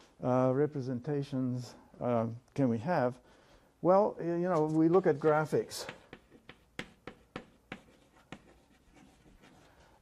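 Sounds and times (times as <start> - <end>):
chalk strokes on blackboard: 4.7 - 10.0
chalk tapping on blackboard: 4.9 - 9.7.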